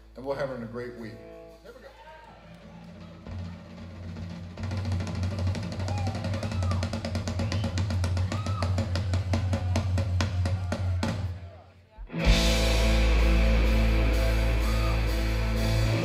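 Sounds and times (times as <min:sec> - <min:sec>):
drum roll on drums and cymbals: 0:02.4 - 0:11.5.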